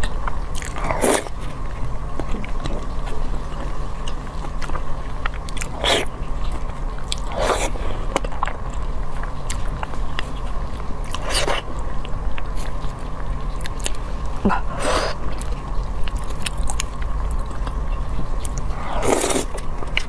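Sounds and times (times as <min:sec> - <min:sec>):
faint steady hum: 0:00.0 - 0:20.0
person chewing sticky food: 0:00.0 - 0:20.0.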